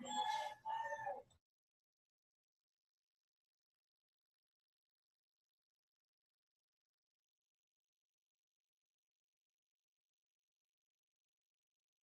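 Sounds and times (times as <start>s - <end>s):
rooster crowing: 0.0s - 1.2s.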